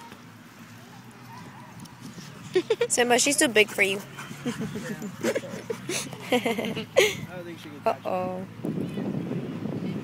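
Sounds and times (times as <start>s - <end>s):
woman laughing: 2.5s - 3.0s, 4.4s - 7.3s.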